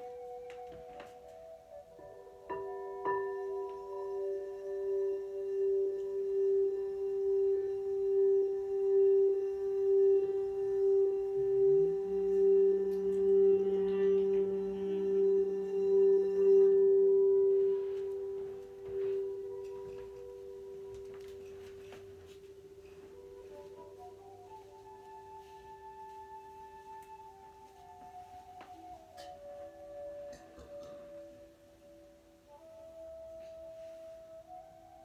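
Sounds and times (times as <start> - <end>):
crystal singing bowl ringing: 0.0 - 24.2
lower tone sliding up: 4.2 - 29.0.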